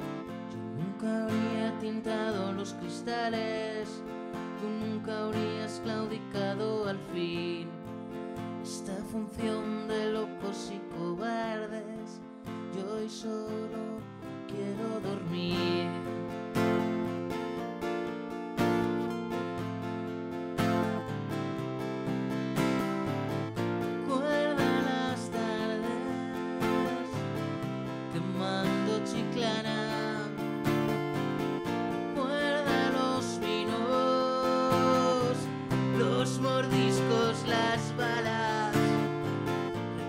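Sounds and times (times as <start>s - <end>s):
man singing: 0.0s - 17.1s, 24.0s - 30.8s, 32.1s - 40.0s
acoustic guitar strumming: 0.0s - 40.0s.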